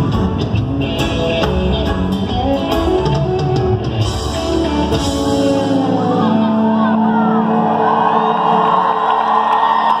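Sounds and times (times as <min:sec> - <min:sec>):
electric guitars sustained chord: 0:00.0 - 0:09.5
crowd cheering and whooping: 0:05.8 - 0:10.0.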